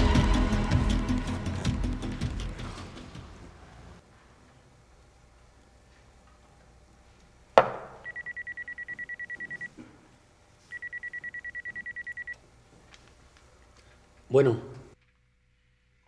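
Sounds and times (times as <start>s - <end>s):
shot glass knocking on wood: 7.6s - 8.0s
electronic telephone ringing: 8.0s - 9.7s, 10.7s - 12.4s.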